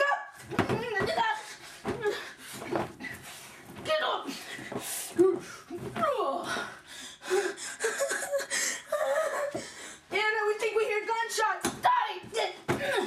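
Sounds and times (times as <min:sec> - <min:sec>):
person laughing and gasping: 0:07.2 - 0:09.9.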